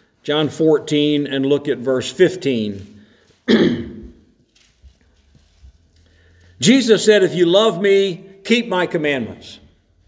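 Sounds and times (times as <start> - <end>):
man clearing throat: 3.4 - 4.2.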